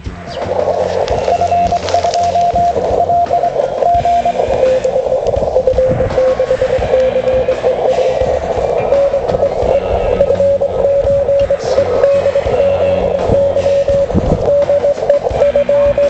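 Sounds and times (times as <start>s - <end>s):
radio receiver hiss: 0.0s - 16.0s
morse code tone: 0.2s - 16.0s.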